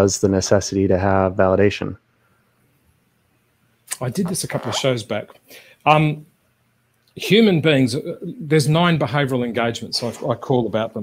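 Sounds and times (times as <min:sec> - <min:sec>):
man speaking: 0:00.0 - 0:02.0, 0:03.9 - 0:06.3, 0:07.2 - 0:11.0.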